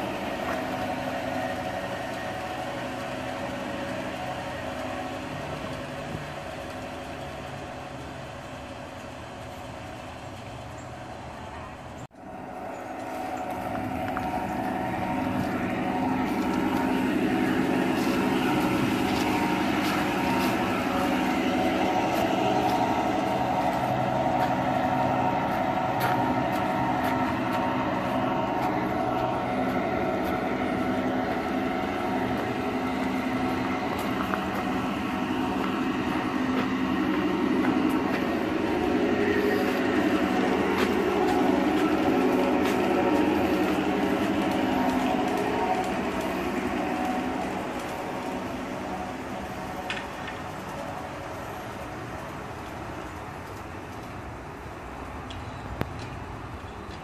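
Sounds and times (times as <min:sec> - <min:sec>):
model train humming: 0:00.0 - 0:57.0.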